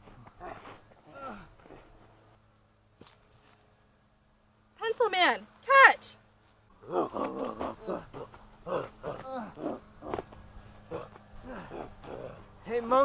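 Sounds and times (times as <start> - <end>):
crickets chirring: 0.0 - 13.0
person grunting and crying out: 1.1 - 1.6, 6.8 - 10.2, 10.9 - 12.5.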